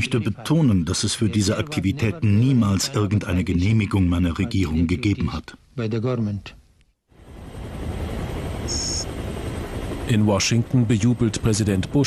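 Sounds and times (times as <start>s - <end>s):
aircraft engine rushing: 7.2s - 12.0s
faint high tone: 8.7s - 9.1s.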